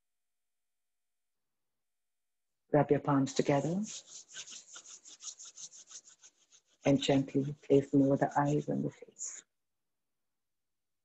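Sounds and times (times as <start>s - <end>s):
palms rubbing together: 3.2s - 9.4s.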